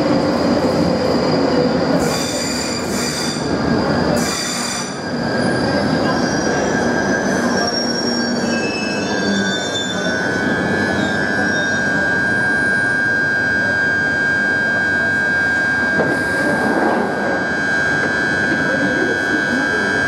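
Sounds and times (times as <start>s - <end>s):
train wheels rumbling on rail: 0.0s - 20.0s
wheel and brake squeals: 1.3s - 14.8s.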